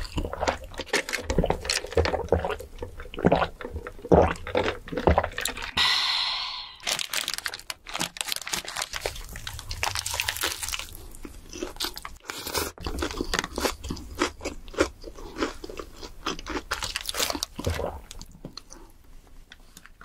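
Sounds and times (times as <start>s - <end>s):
biting and chewing a burger: 0.0s - 5.8s, 7.1s - 20.0s
brief hissing noise: 5.8s - 7.1s.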